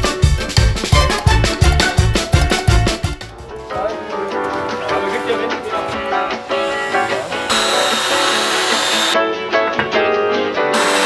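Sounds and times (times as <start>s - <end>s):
background guitar music: 0.0s - 11.0s
cordless drill driving screw: 6.6s - 9.2s, 10.7s - 11.0s.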